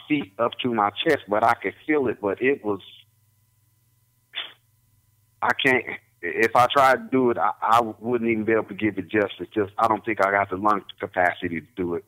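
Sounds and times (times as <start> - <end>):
faint steady hum: 0.0 - 12.0
short puff of breath: 4.4 - 4.6.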